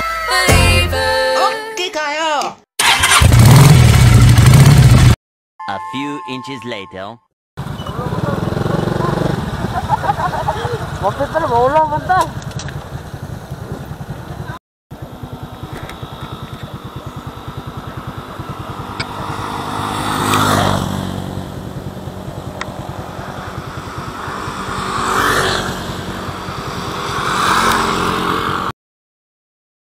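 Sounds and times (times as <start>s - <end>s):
motorcycle engine running: 2.8s - 5.2s, 7.6s - 28.7s.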